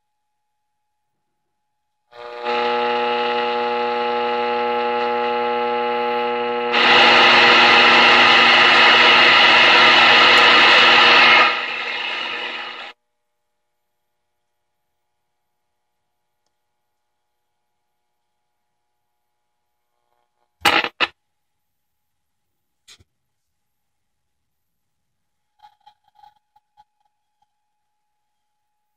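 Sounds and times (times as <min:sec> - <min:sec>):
radio static: 0:02.2 - 0:12.9, 0:20.6 - 0:21.1
radio buzzing tone: 0:02.2 - 0:13.0, 0:20.6 - 0:21.1.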